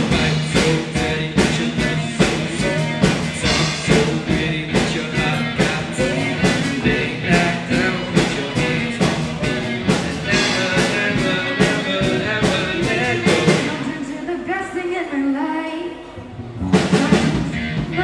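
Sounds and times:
drum kit beat: 0:00.0 - 0:14.0, 0:16.6 - 0:18.0
electric guitar: 0:00.0 - 0:14.0, 0:16.2 - 0:18.0.

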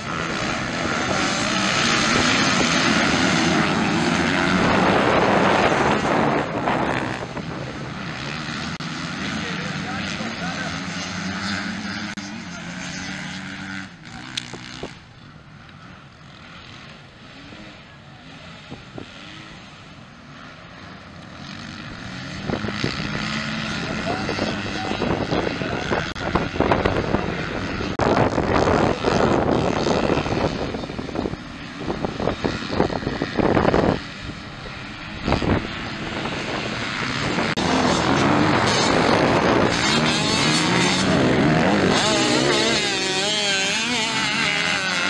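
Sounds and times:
dirt bike engines revving: 0:00.0 - 0:45.0.

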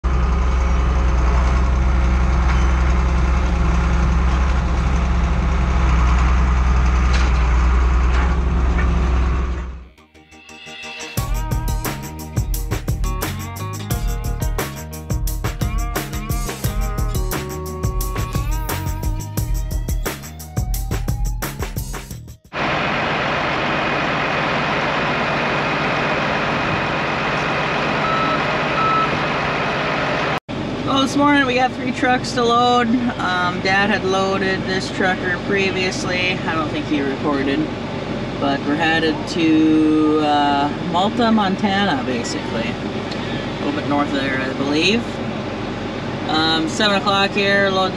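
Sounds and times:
large engine droning: 0:00.0 - 0:14.1, 0:22.5 - 0:47.9
back-up alarm beeps: 0:28.0 - 0:29.2.

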